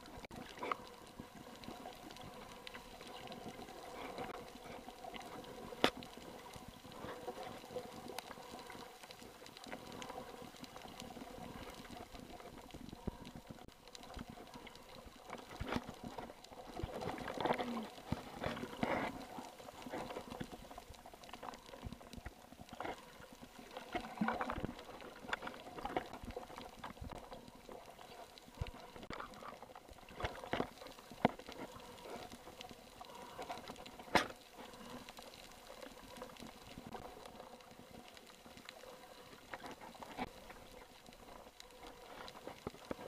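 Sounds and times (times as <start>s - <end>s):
underwater water movement: 0.0s - 43.0s.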